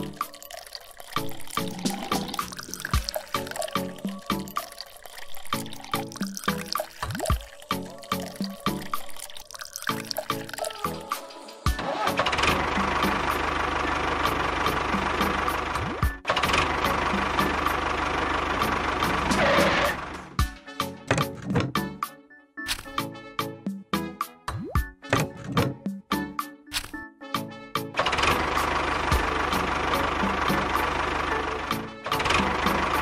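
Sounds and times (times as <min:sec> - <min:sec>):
background music with a beat: 0:01.6 - 0:04.8, 0:06.0 - 0:09.1, 0:10.6 - 0:11.9, 0:14.2 - 0:16.3, 0:20.4 - 0:28.0
small tractor motor running: 0:12.2 - 0:20.3, 0:28.0 - 0:33.0.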